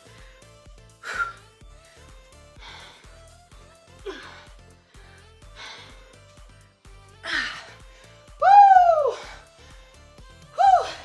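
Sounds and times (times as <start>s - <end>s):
music with steady beat: 0.0s - 11.0s
woman's drawn-out vocal cry: 8.4s - 9.4s, 10.5s - 11.0s.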